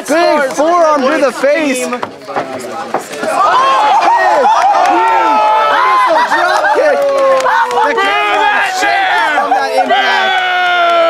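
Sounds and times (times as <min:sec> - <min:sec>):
crowd shouting: 0:03.0 - 0:11.0.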